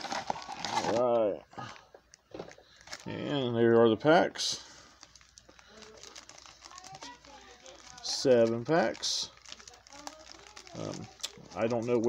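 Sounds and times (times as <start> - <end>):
foil wrappers crinkling: 0.0 - 3.2, 4.4 - 12.0.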